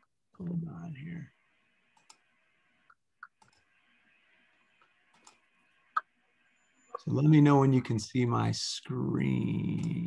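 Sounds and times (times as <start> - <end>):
faint background hiss: 0.3 - 10.0
computer mouse clicks: 1.9 - 2.3, 2.9 - 3.7, 4.8 - 5.5, 9.7 - 10.0.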